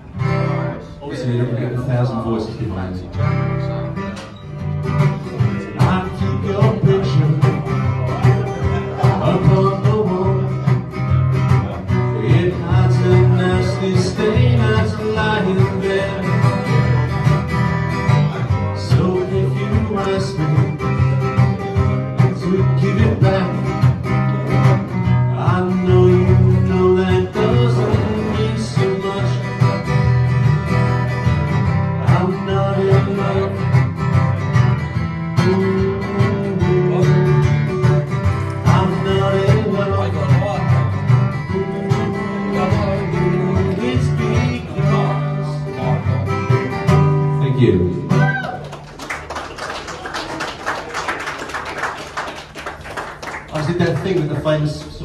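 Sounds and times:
acoustic guitar strumming: 0:00.0 - 0:48.8
man singing: 0:05.2 - 0:34.2, 0:34.9 - 0:48.2.

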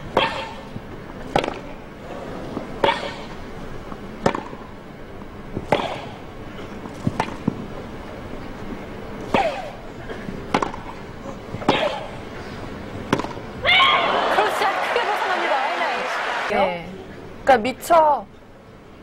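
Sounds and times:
tennis racket hitting ball: 0:01.3 - 0:01.7, 0:04.2 - 0:04.7, 0:05.6 - 0:06.2, 0:07.0 - 0:07.6, 0:10.5 - 0:11.0, 0:13.1 - 0:13.5
crowd cheering and applauding: 0:13.7 - 0:16.5.

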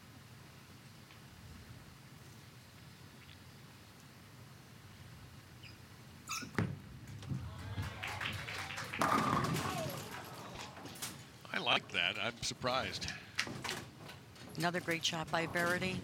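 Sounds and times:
bowling ball rolling: 0:06.5 - 0:11.1
pins crashing: 0:08.6 - 0:11.2
bowling ball thud: 0:08.9 - 0:10.4.

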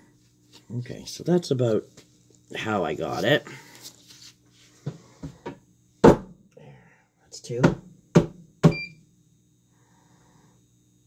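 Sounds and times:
molds knocking on a table: 0:04.9 - 0:06.4.

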